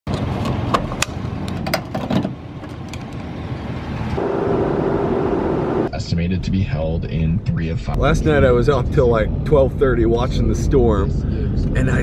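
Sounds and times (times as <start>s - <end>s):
road drone inside truck cab: 0.1s - 6.0s
steady hum: 3.4s - 6.1s
low rumble: 3.5s - 12.0s.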